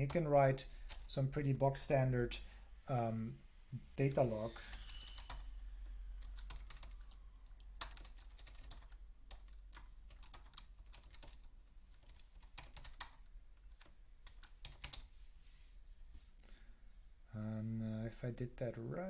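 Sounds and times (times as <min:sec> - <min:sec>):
typing on computer keyboard: 0:06.2 - 0:15.1.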